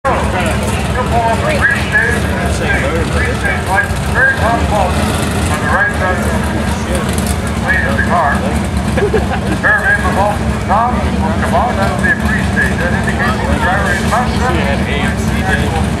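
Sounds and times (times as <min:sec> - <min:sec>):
car engine idling with rough rumble: 0:00.0 - 0:16.0
person talking: 0:00.1 - 0:16.0.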